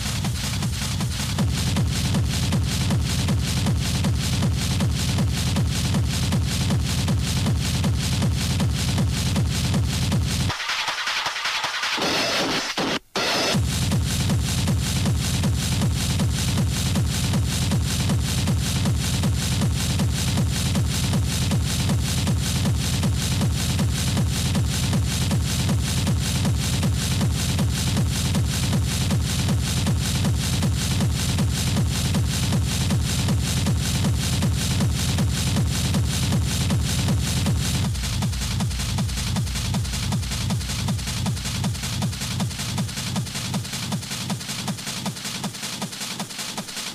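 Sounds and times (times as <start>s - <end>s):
fast heavy kick-drum beat: 0.0s - 46.9s
noisy techno build-up: 0.0s - 46.9s.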